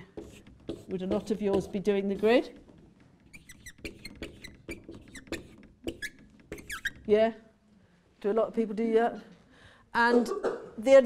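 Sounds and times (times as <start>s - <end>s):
marker squeaking on whiteboard: 0.0s - 7.2s.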